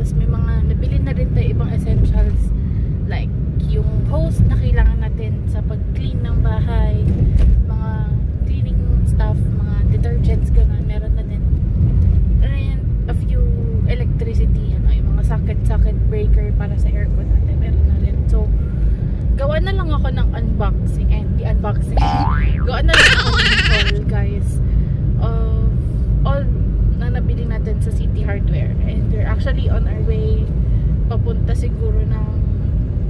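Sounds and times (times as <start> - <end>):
woman talking: 0.0 - 2.5, 3.1 - 7.1, 7.7 - 11.5, 12.4 - 18.6, 19.4 - 24.6, 25.2 - 30.5, 31.1 - 32.4.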